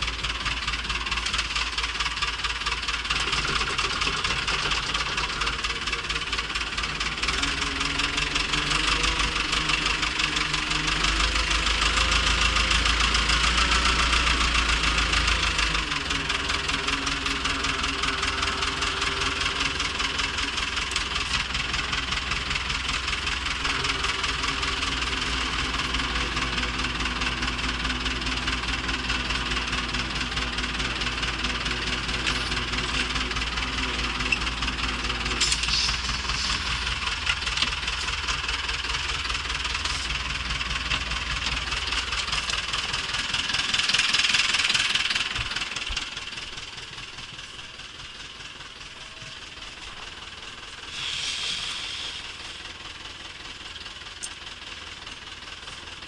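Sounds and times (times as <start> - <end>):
tractor diesel engine running: 0.0 - 56.0.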